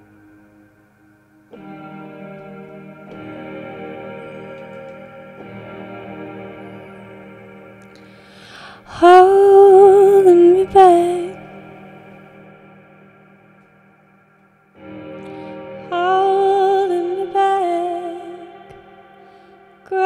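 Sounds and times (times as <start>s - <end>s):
electronic keyboard chords: 0.0s - 20.0s
woman singing with vibrato: 8.4s - 11.9s, 15.8s - 19.1s.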